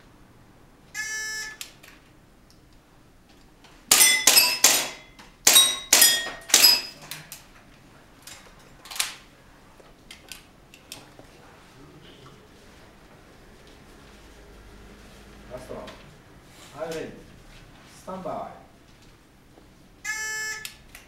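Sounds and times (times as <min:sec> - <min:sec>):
electronic timer beep: 0:01.0 - 0:01.6, 0:20.1 - 0:20.7
airsoft pistol shots: 0:03.9 - 0:06.9.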